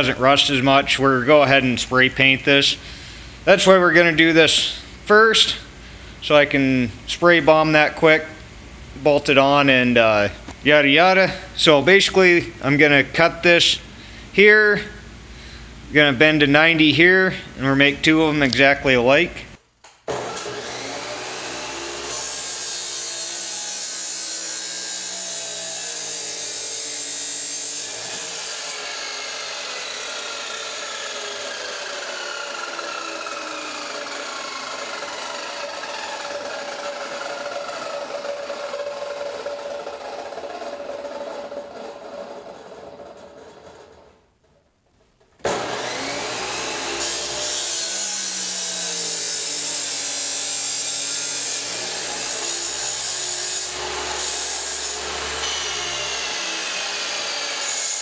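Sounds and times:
chop saw cutting steel: 20.1 - 43.9, 45.4 - 58.0.

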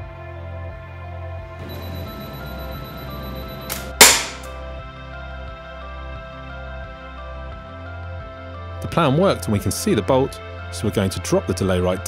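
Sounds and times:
background music: 0.0 - 12.0
crossbow firing crack: 3.7 - 4.6.

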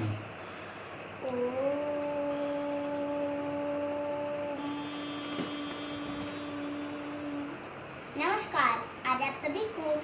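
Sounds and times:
child chanting: 1.2 - 10.0.

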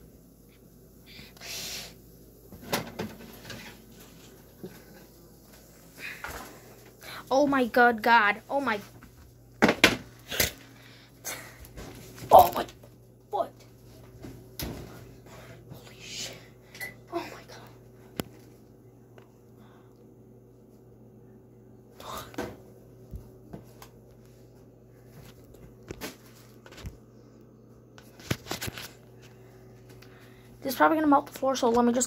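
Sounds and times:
steady low hum: 0.0 - 32.0
kitchen knocks and clatters: 2.5 - 3.9, 9.6 - 10.6.

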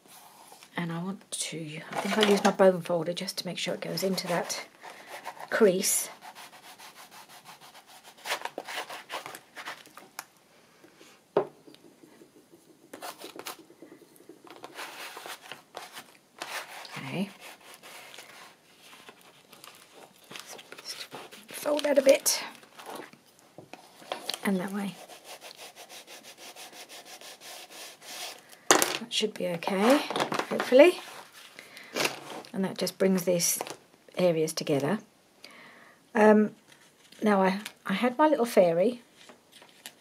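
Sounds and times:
bone folder scraping paper: 4.1 - 10.0, 14.5 - 22.2, 24.9 - 28.4.

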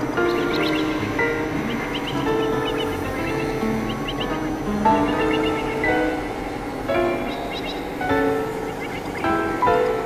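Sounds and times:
chirping synth blips: 0.0 - 10.0
synthesizer drone chords: 0.0 - 10.0.

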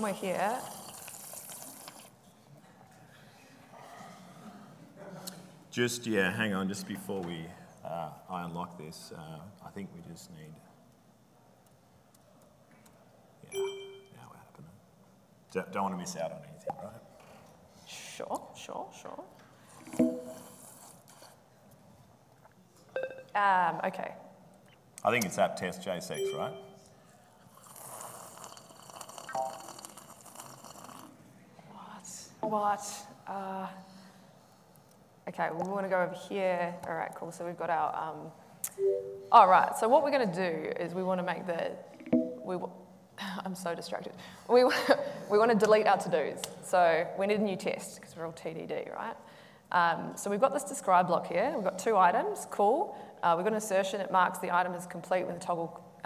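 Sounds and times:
faint room hiss: 0.0 - 56.0
sipping from a cup: 0.6 - 2.2, 19.9 - 21.4, 27.4 - 31.2.

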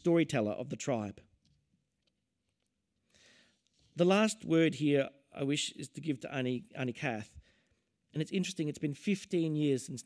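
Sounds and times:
man talking: 0.0 - 1.2, 4.0 - 7.4, 8.1 - 10.0.

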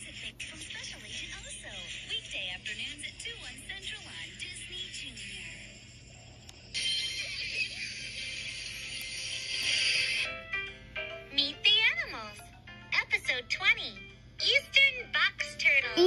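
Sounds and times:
television promo music with voices: 0.0 - 16.0.

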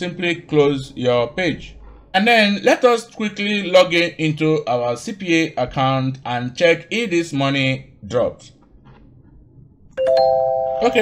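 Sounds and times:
electronic chime chord: 10.0 - 11.0
person speaking: 10.8 - 11.0.

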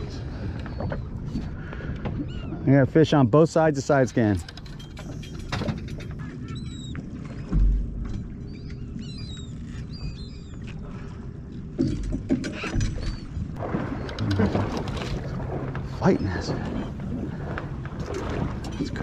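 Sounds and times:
boat engine rumble: 0.0 - 19.0
high bird calls: 6.2 - 7.6, 8.3 - 11.2.

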